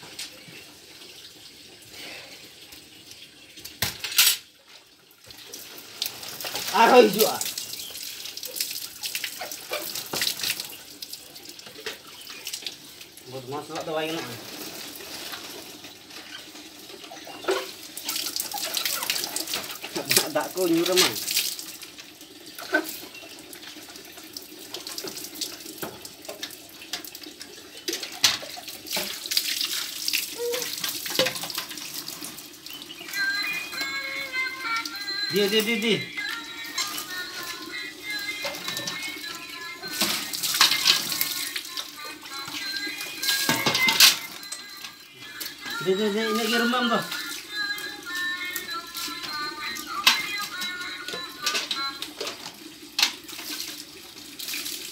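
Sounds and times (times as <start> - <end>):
water splashing onto concrete: 5.2 - 16.3, 17.3 - 33.8, 38.6 - 44.5, 53.0 - 54.9.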